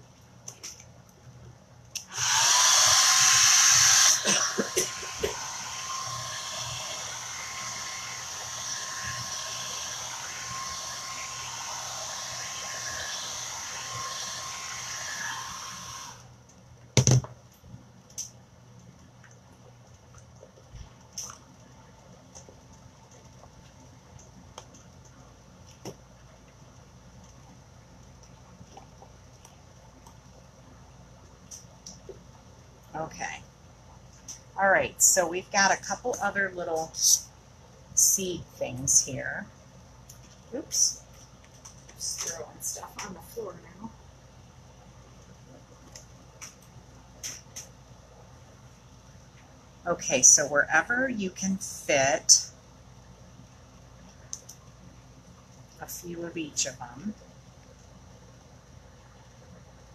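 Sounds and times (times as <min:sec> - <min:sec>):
handheld dryer motor whine: 0:02.0 - 0:16.4.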